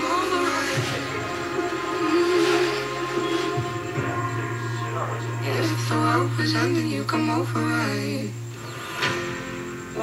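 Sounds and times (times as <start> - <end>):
radio music with bass and keyboard: 0.0 - 10.0.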